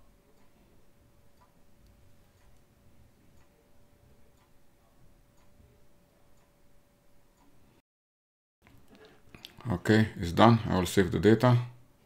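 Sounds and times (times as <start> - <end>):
faint clock ticking: 0.0 - 7.8
faint steady hum: 0.0 - 7.8, 8.6 - 12.0.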